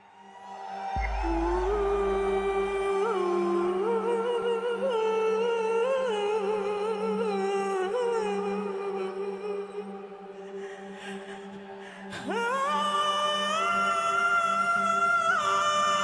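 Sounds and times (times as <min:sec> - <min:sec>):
low drone: 0:00.7 - 0:04.1
woman singing: 0:01.0 - 0:16.0.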